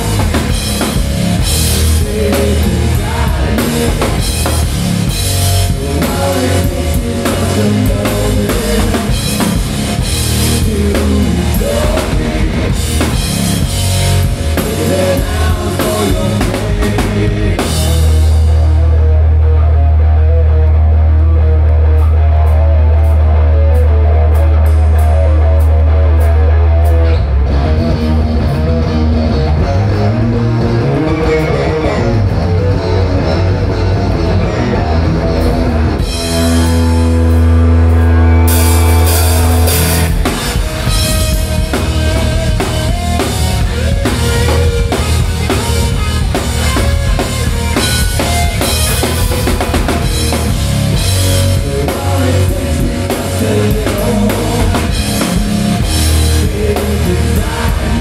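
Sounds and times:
drum kit with cymbals: 0.0s - 18.7s, 36.0s - 58.0s
electric guitar: 0.0s - 58.0s
hard rock band playing: 0.0s - 58.0s
heavy bass line: 0.0s - 58.0s.

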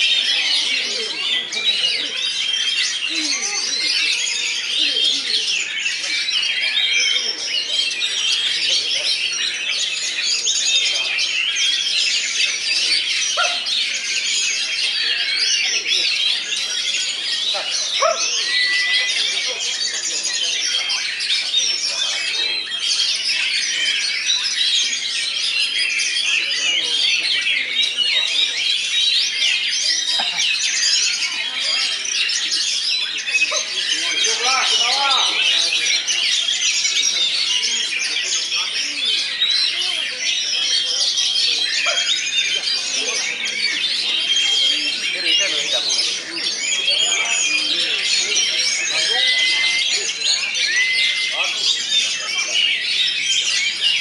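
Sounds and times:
birds warbling in chorus: 0.0s - 54.0s
faint voices of people: 0.0s - 54.0s.

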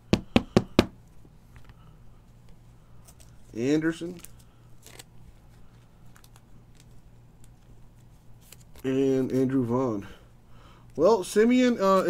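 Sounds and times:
cards knocking on tabletop: 0.1s - 1.0s.

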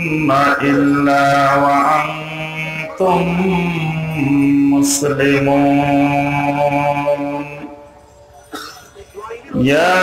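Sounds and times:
man chanting into microphone: 0.0s - 7.8s, 9.5s - 10.0s.

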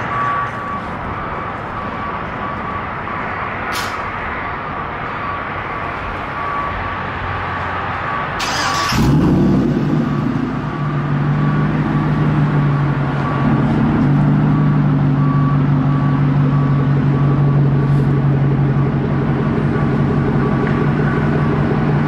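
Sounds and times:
engine cranking: 8.4s - 9.4s.

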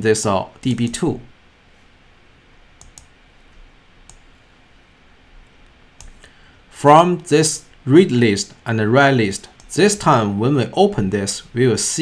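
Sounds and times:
low background hiss: 0.0s - 12.0s
computer mouse clicks: 2.8s - 4.3s, 5.4s - 6.3s.

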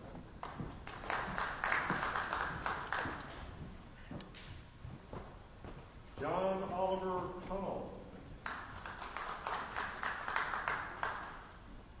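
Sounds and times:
audience applauding: 0.4s - 3.4s, 8.4s - 11.6s.

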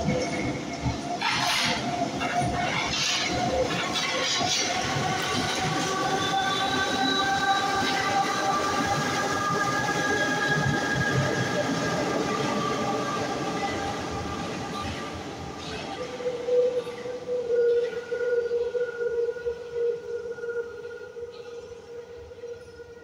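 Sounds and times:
train rumbling on rails: 0.0s - 23.0s.

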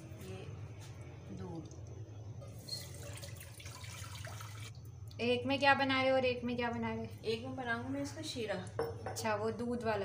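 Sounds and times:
milk pouring into metal pot: 1.2s - 4.8s.

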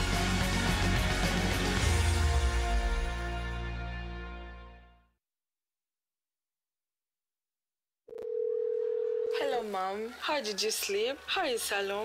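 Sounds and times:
steady telephone tone: 8.1s - 9.4s.

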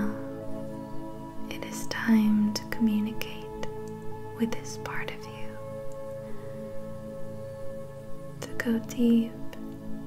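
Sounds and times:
ambient meditation music: 0.0s - 10.0s.

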